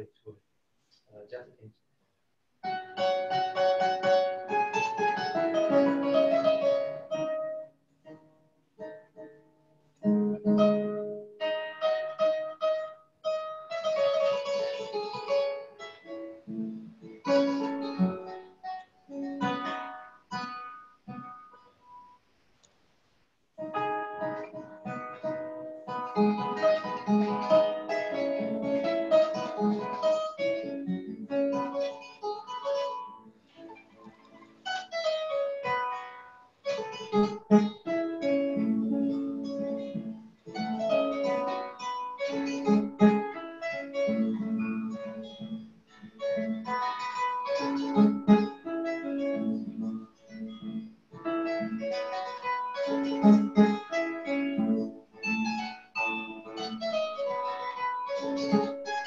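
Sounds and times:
plucked harp notes: 0:23.6 - 0:59.0.

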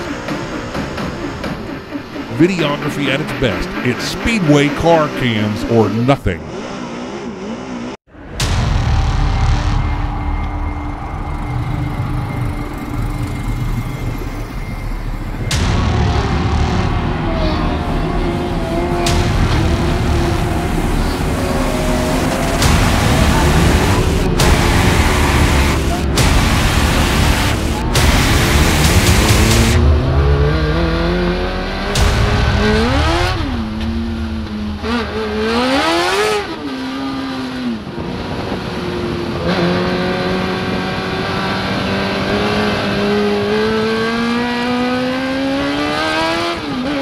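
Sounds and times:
race car engine revving: 0:00.0 - 0:47.0.

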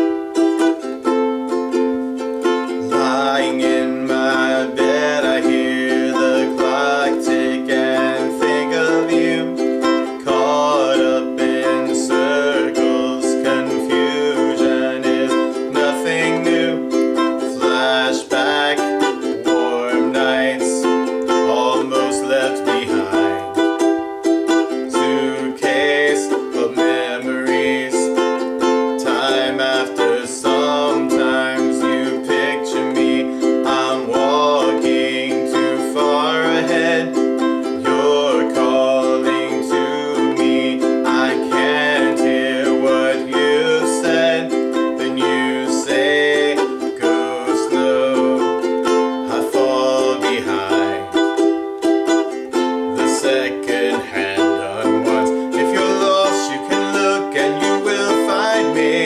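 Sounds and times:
ukulele strumming: 0:00.0 - 0:59.0.

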